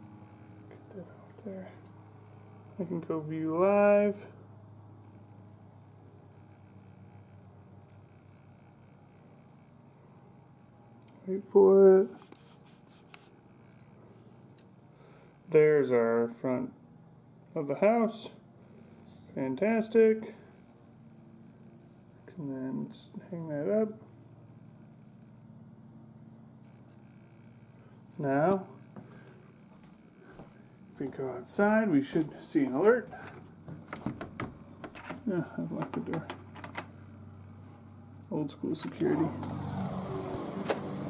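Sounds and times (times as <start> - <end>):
door handle and latch rattling: 33.2 - 36.9.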